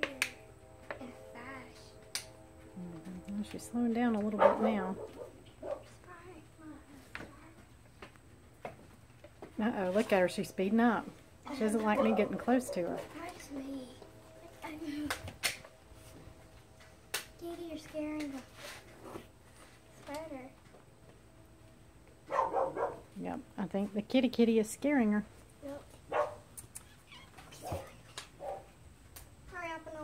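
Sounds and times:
cat meowing: 26.8s - 27.6s.

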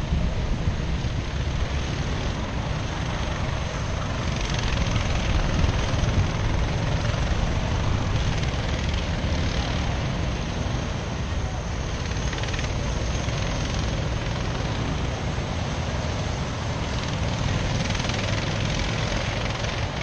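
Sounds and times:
distant kart engines droning: 0.0s - 20.0s
wind buffeting microphone: 0.0s - 20.0s.

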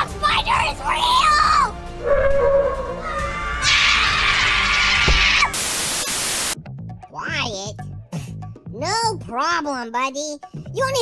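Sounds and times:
background music: 0.0s - 11.0s
cartoon child screaming: 1.0s - 1.7s, 2.9s - 5.6s
tv static hiss: 5.5s - 6.6s.

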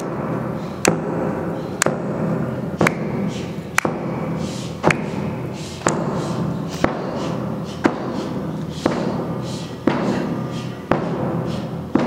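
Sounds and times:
sharp percussive strikes: 0.0s - 6.2s
steady low drone: 0.0s - 12.0s.

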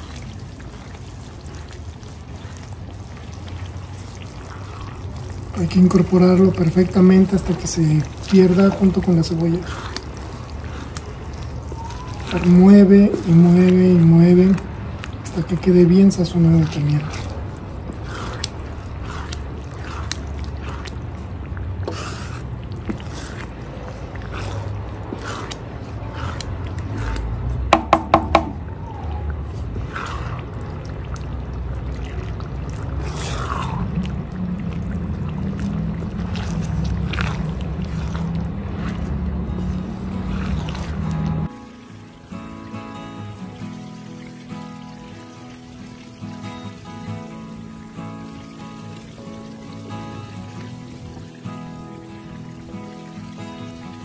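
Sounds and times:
onion frying in oil: 0.0s - 54.0s.

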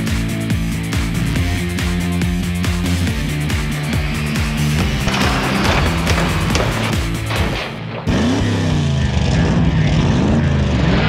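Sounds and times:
car engines revving: 0.4s - 11.0s.

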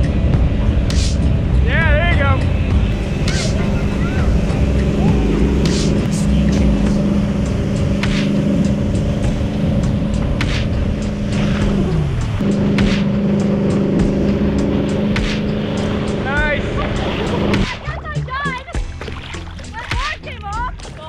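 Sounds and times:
rushing water and spray: 0.0s - 20.3s
boat engine running: 0.0s - 21.0s.

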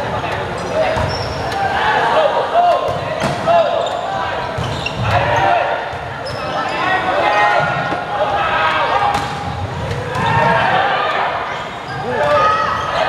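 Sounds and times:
sneakers squeaking on wooden court: 0.1s - 1.6s, 2.9s - 7.0s
people shouting and calling: 1.4s - 13.0s.

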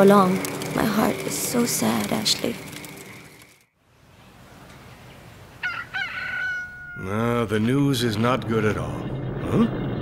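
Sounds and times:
rooster crowing: 5.6s - 7.3s.

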